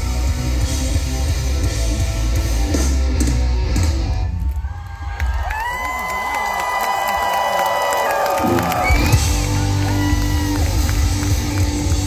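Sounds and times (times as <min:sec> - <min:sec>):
live rock band playing: 0:00.0 - 0:04.4, 0:08.4 - 0:12.0
crowd cheering: 0:04.2 - 0:12.0.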